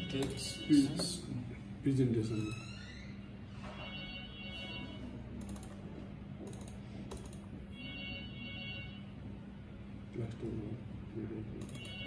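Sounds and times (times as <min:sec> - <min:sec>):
steady low hum: 0:00.0 - 0:12.0
keyboard and mouse clicks: 0:05.4 - 0:05.8, 0:06.4 - 0:07.5, 0:11.6 - 0:12.0.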